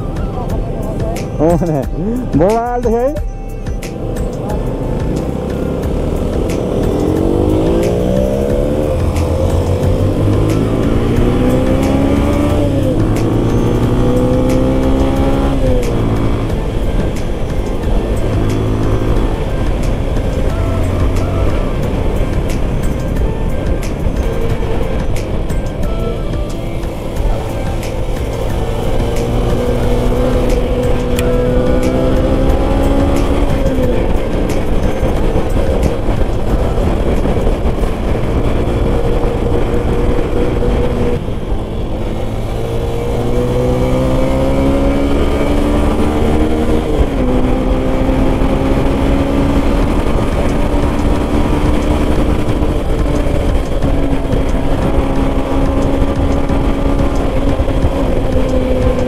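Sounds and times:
motorcycle engine accelerating: 0.0s - 59.0s
wind and road noise: 0.0s - 59.0s.

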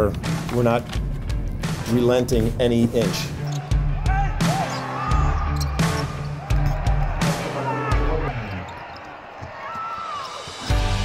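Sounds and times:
sneaker squeak: 3.4s - 3.8s, 4.5s - 6.8s, 8.4s - 10.7s
crowd noise: 3.4s - 11.0s.

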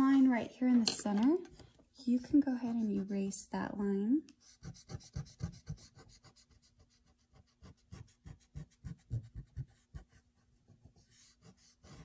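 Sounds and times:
eraser rubbing on paper: 4.4s - 10.2s, 10.9s - 12.0s.

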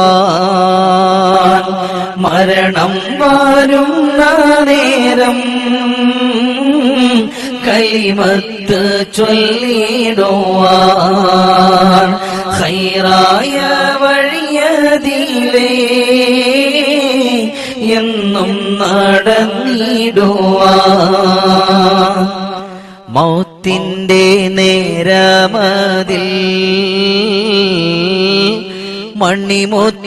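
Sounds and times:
man chanting devotional song: 0.0s - 30.0s.

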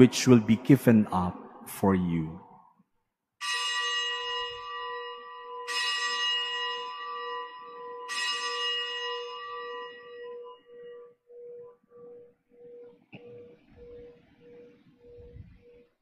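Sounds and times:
low steady hum: 0.0s - 2.8s
bell ringing: 3.4s - 12.3s.

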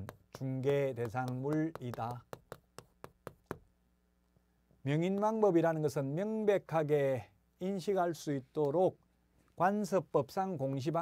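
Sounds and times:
chalk tapping on blackboard: 0.0s - 3.7s.

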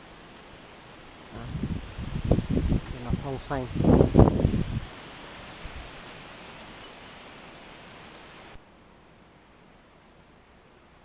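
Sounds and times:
forest ambience hiss: 0.0s - 11.0s.

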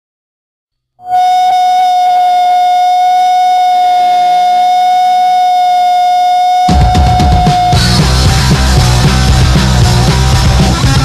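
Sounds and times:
electric guitar feedback tone: 1.0s - 11.0s.

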